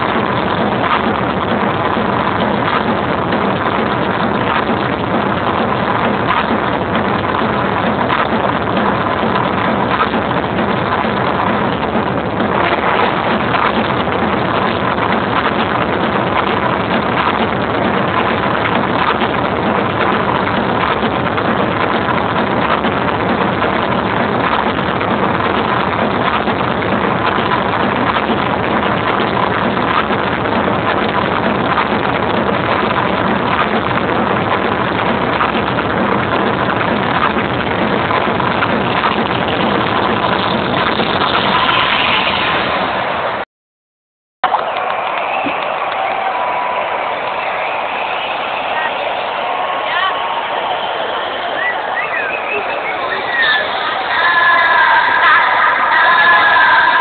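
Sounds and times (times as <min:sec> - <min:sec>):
loud distorted dance music: 0:00.0 - 0:43.4, 0:44.4 - 0:57.0.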